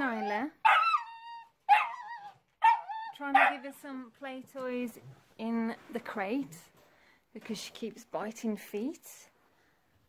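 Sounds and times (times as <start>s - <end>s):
puppy yelping and whining: 0.0s - 3.6s.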